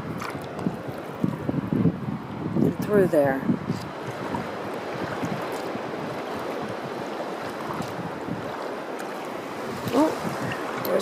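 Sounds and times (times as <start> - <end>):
water lapping at shoreline: 0.0 - 11.0.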